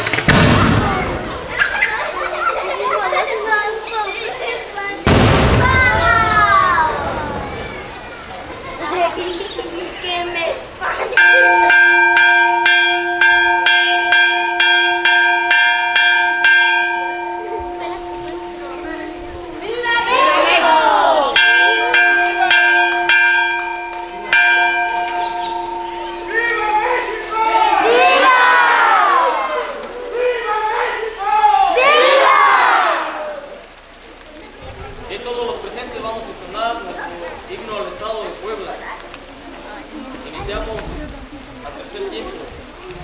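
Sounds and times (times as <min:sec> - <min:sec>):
crowd shouting and cheering: 0:00.0 - 0:33.8
hand-rung bell ringing: 0:11.2 - 0:27.9.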